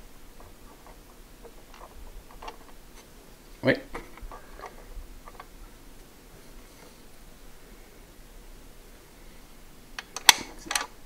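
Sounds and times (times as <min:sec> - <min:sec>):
small parts clicking and tapping: 0:00.1 - 0:03.1, 0:03.9 - 0:06.1, 0:10.0 - 0:11.0.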